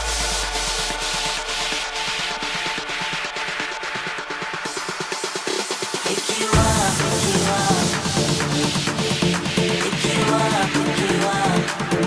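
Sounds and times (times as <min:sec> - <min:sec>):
held synth chords: 0:00.0 - 0:12.0.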